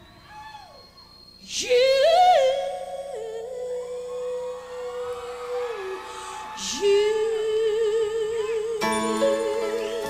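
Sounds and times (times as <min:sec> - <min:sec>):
soft sustained accompaniment: 0:07.2 - 0:10.0.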